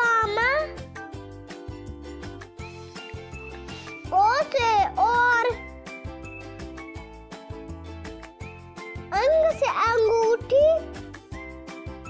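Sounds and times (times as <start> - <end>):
children's music with beat: 0.0 - 12.0.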